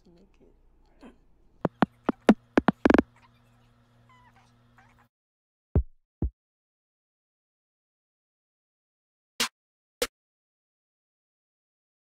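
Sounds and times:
kick drum hits: 5.8s - 6.3s.

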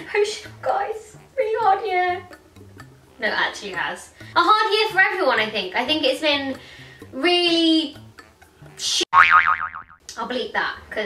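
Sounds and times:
cartoon spring boing: 9.1s - 10.0s.

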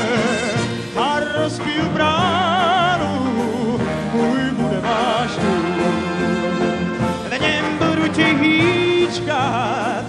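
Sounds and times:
big band orchestra: 0.0s - 10.0s
man singing: 0.0s - 10.0s.

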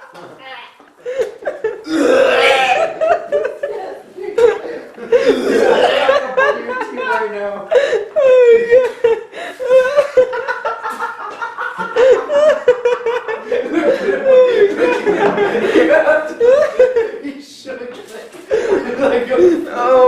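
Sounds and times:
people laughing and chuckling: 0.9s - 17.4s, 18.4s - 20.0s.

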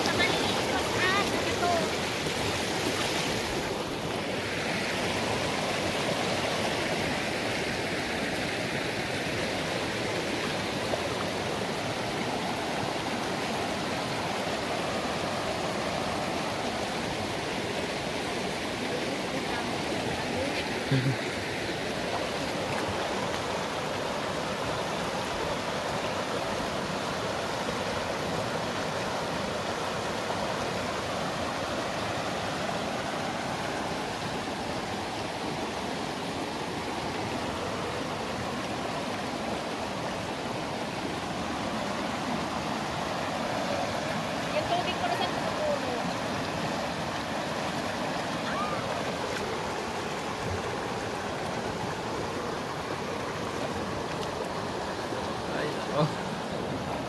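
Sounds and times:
creek rushing over rocks: 0.0s - 57.0s.

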